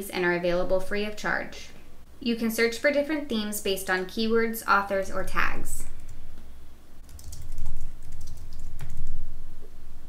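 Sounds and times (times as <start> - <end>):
typing on computer keyboard: 7.0 - 9.2.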